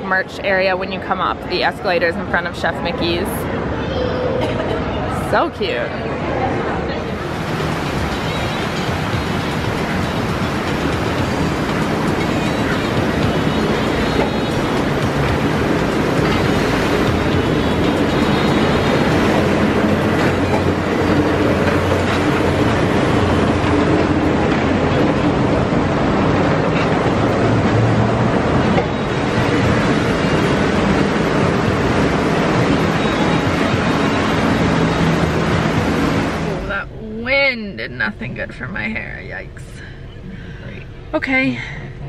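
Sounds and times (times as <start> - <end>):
monorail train rolling rumble: 0.0 - 42.0.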